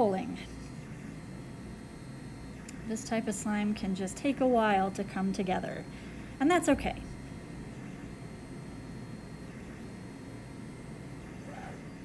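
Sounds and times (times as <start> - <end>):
room hum: 0.0 - 12.0.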